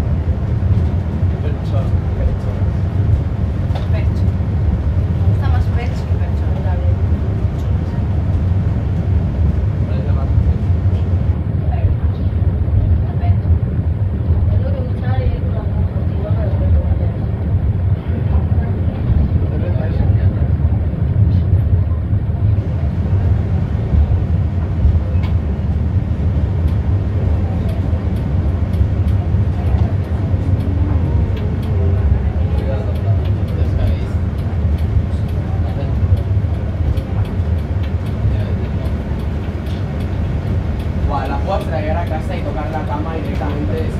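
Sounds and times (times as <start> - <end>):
funicular car rumbling on track: 0.0 - 43.9
faint muffled voices: 9.4 - 43.9.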